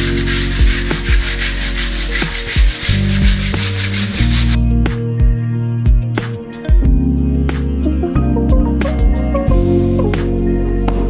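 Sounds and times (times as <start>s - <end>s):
sanding pad scratching wall: 0.0s - 4.7s
background music: 0.0s - 11.0s.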